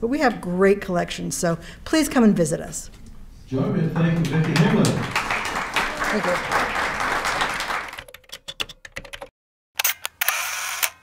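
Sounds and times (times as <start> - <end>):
audience applause: 4.0 - 8.1
camera shutter click: 9.8 - 11.0
camera whirring: 9.8 - 11.0.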